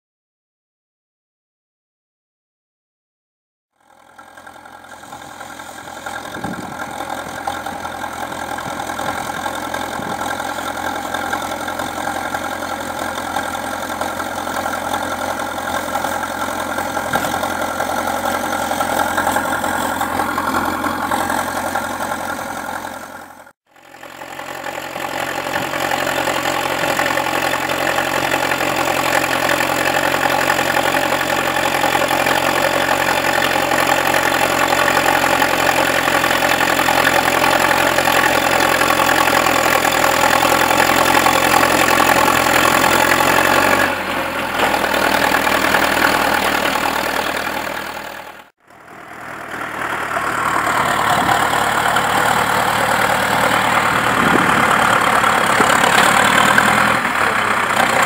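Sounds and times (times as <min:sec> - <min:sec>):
tractor diesel engine running: 0:03.8 - 0:58.0.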